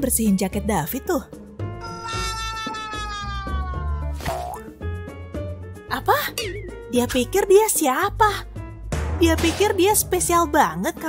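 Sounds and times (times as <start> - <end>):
background music with steady beat: 1.2 - 11.0.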